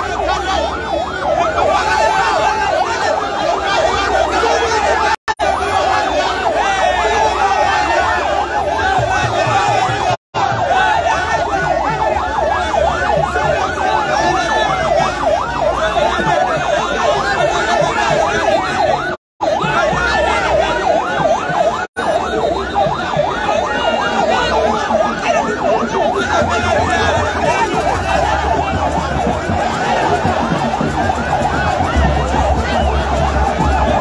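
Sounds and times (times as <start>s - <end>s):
large crowd noise: 0.0s - 34.0s
sirens yelping: 0.0s - 34.0s.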